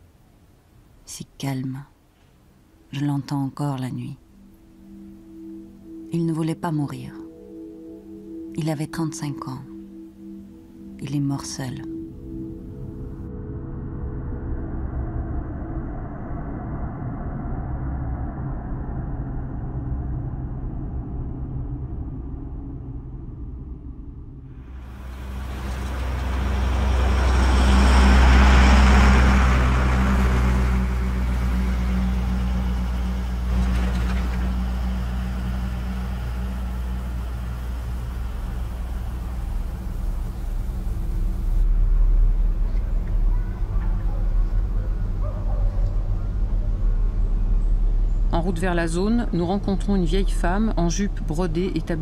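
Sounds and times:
road noise: 0:24.6 - 0:52.0
bus engine hum: 0:24.7 - 0:52.0.

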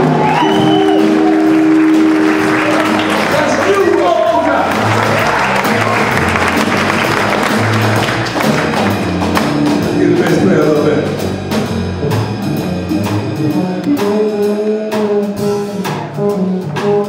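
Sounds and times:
walking double bass: 0:00.0 - 0:17.0.

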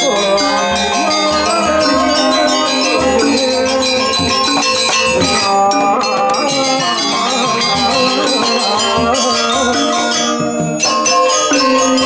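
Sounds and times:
metallophones struck with mallets: 0:00.0 - 0:12.0
low pulse: 0:00.6 - 0:07.0.

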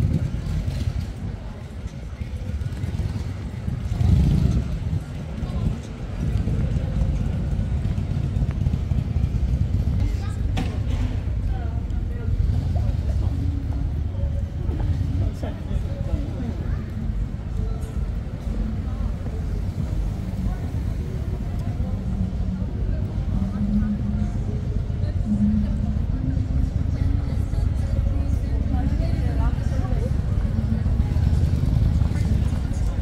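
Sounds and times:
distant voices talking: 0:00.0 - 0:33.0
steady low city rumble: 0:00.0 - 0:33.0.

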